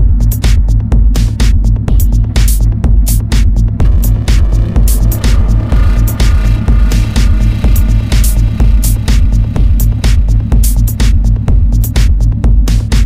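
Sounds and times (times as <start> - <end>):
pulsing bass and kick: 0.0 - 13.0
sustained synth tone: 3.8 - 11.8.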